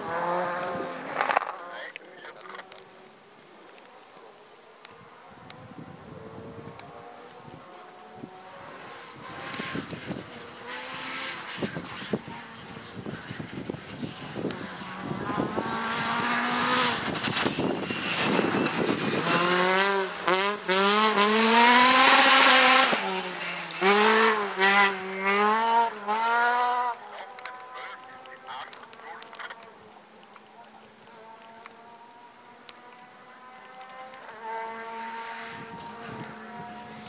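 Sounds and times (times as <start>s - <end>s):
distant car engine: 0.0s - 37.0s
rally car engine revving: 0.0s - 37.0s.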